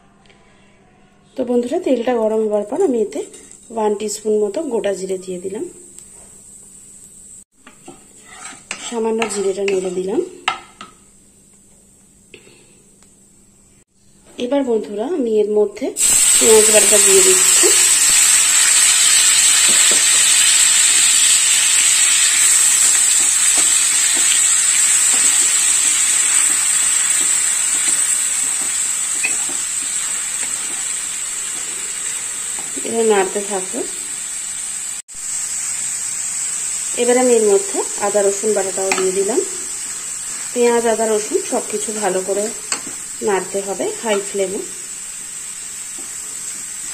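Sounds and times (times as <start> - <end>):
seeds sizzling in hot oil: 2.7 - 11.0, 16.0 - 46.9
wooden spatula stirring: 7.7 - 10.1.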